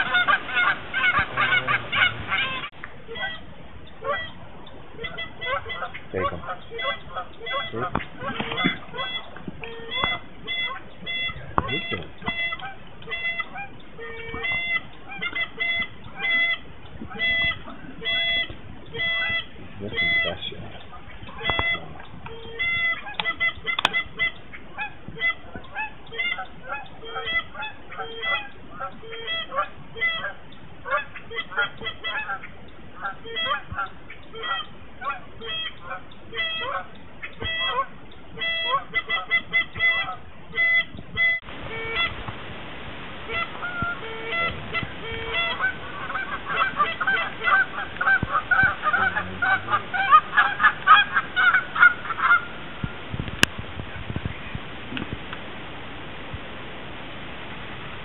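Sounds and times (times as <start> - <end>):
geese honking: 0.0 - 4.4, 5.0 - 42.3, 43.2 - 53.0.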